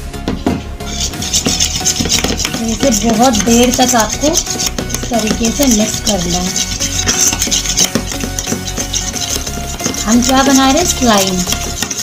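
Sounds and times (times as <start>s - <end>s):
spoon scraping bowl sides: 0.4s - 12.0s.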